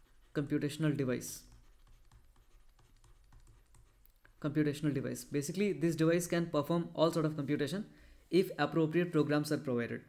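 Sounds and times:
stylus tapping on drawing tablet: 0:01.5 - 0:04.0.

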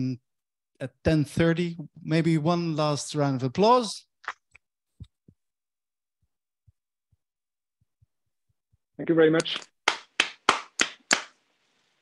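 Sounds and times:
person clapping: 0:09.4 - 0:11.4.

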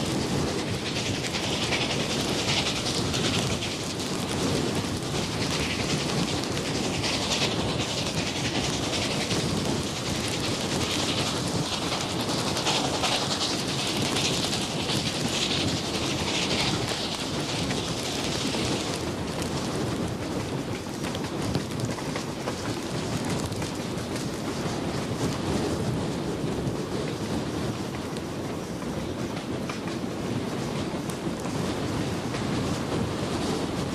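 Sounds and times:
bright steam hiss: 0:00.0 - 0:19.2
steam locomotive hissing: 0:00.0 - 0:33.9.

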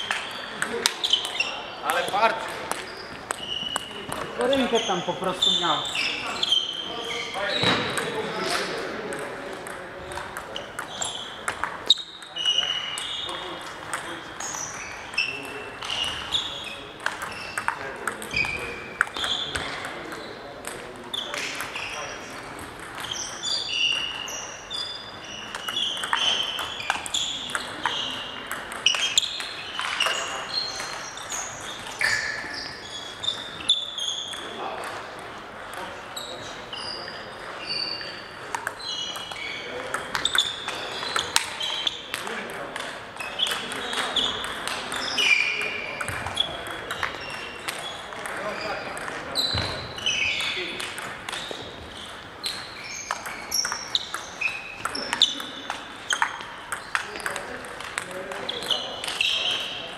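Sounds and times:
table tennis ball pinging: 0:00.0 - 0:06.8, 0:07.5 - 0:36.0, 0:36.8 - 0:59.9.

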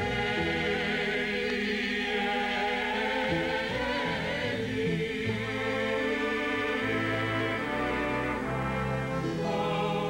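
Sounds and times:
women's choir chanting: 0:00.0 - 0:08.4, 0:09.3 - 0:10.0.

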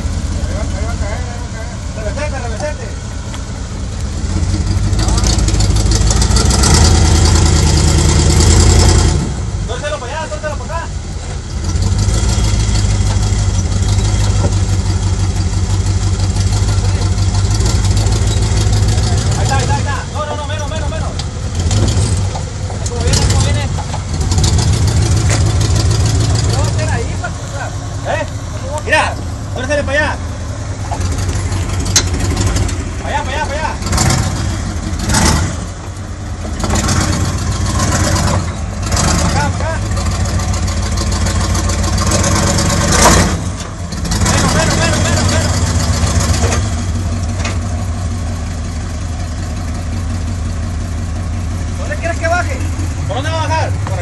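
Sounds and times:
engine running at low revs: 0:00.0 - 0:54.0
people talking: 0:00.4 - 0:03.0, 0:04.9 - 0:05.5, 0:09.7 - 0:11.0, 0:16.6 - 0:17.3, 0:18.8 - 0:21.3, 0:22.7 - 0:23.9, 0:26.4 - 0:30.2, 0:33.0 - 0:33.9, 0:39.2 - 0:40.0, 0:44.2 - 0:45.7, 0:51.8 - 0:54.0.

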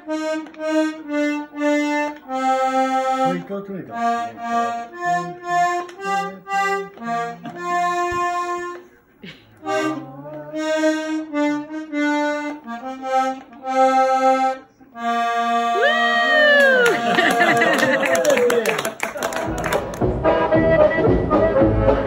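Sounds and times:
button accordion playing: 0:00.0 - 0:18.0, 0:19.4 - 0:22.0.

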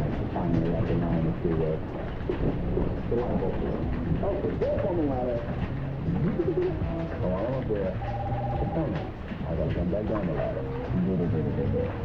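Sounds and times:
muffled television audio: 0:00.0 - 0:12.0
steady rain hiss: 0:00.0 - 0:12.0.

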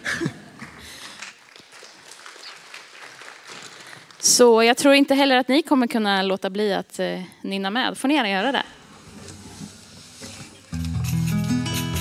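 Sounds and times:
audience applause: 0:00.9 - 0:04.2.

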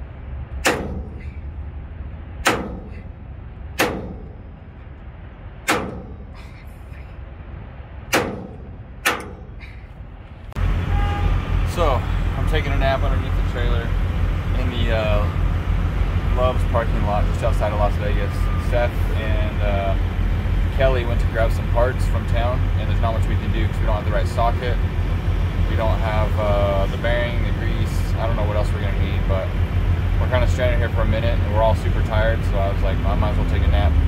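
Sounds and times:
steady low rumble: 0:00.0 - 0:34.0
sledgehammer striking metal: 0:00.5 - 0:01.5, 0:02.4 - 0:04.8, 0:05.6 - 0:06.5, 0:08.0 - 0:09.8.

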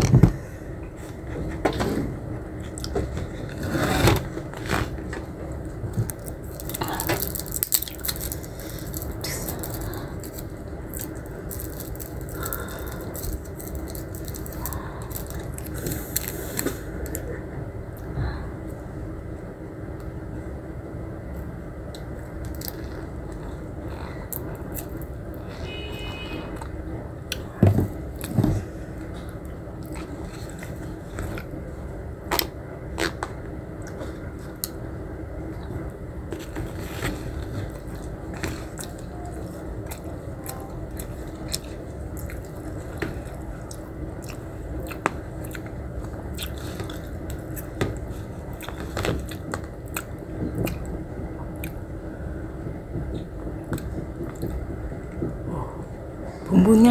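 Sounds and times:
steady low hum: 0:00.0 - 0:56.9
person chewing food: 0:05.8 - 0:17.3, 0:27.3 - 0:31.6, 0:35.5 - 0:51.9.

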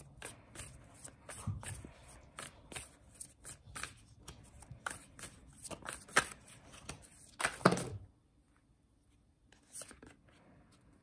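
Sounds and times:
cards being shuffled: 0:00.1 - 0:08.0, 0:09.5 - 0:10.3.

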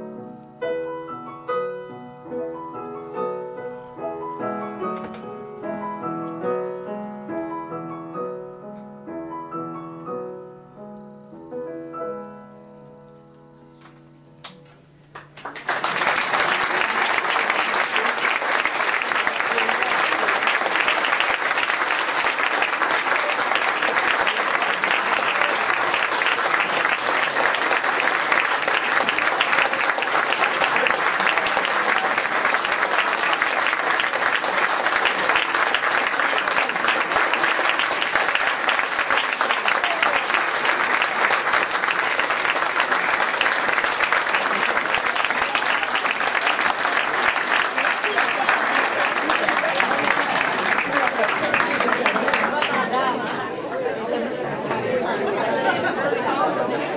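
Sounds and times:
audience applauding: 0:15.1 - 0:53.5.

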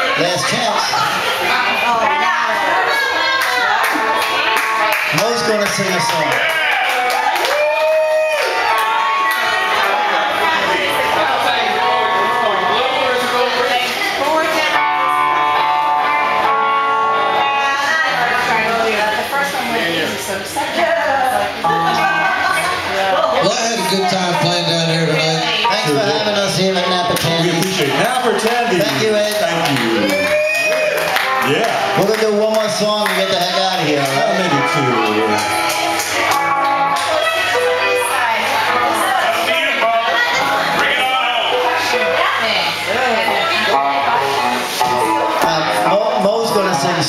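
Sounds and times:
live band music: 0:00.0 - 0:07.3, 0:08.4 - 0:20.3, 0:21.4 - 0:47.0
electric guitar bent notes: 0:14.6 - 0:19.1, 0:21.5 - 0:30.3, 0:31.1 - 0:47.0.

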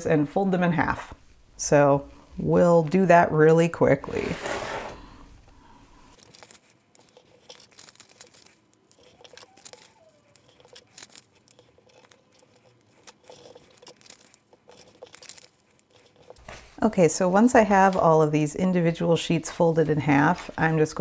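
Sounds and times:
paper crinkling and rustling: 0:06.1 - 0:21.0
hand tapping and scraping paper: 0:06.2 - 0:18.5.

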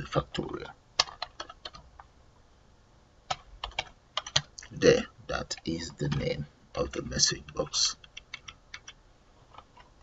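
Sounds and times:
computer keyboard typing: 0:01.0 - 0:01.9, 0:03.3 - 0:04.7, 0:05.4 - 0:10.0.

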